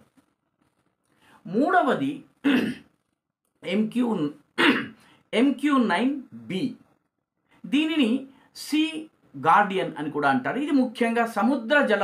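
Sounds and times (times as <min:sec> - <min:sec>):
man clearing throat: 0:02.4 - 0:02.9, 0:04.6 - 0:05.0
man coughing: 0:02.4 - 0:02.9, 0:04.6 - 0:05.0.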